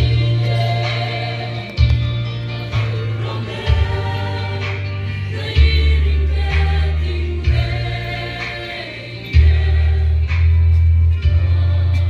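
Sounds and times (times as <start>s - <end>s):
amplified band: 0.0s - 12.0s
choir singing gospel: 0.0s - 12.0s
deep bass notes: 0.0s - 12.0s.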